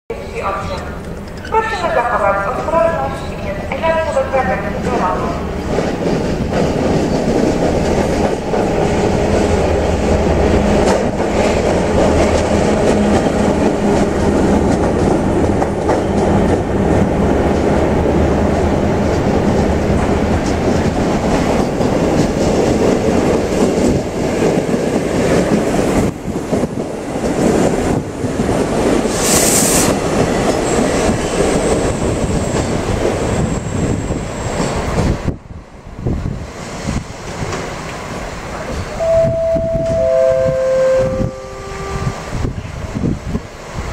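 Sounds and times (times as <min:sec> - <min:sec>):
diesel railbus rumbling past: 0:00.1 - 0:43.9
short sharp hiss: 0:29.2 - 0:30.0.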